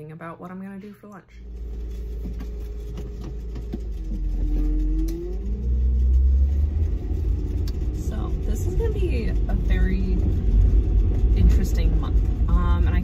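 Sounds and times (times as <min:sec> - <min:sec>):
car engine rumbling: 0:01.4 - 0:13.0
rising whine: 0:01.4 - 0:13.0.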